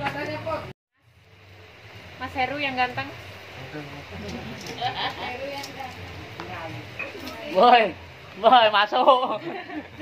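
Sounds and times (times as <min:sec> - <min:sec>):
fish sizzling on grill: 0:00.0 - 0:10.0.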